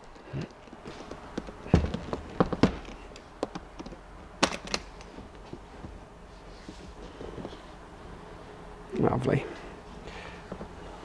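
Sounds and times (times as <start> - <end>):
metal latches clicking: 0.0 - 5.4.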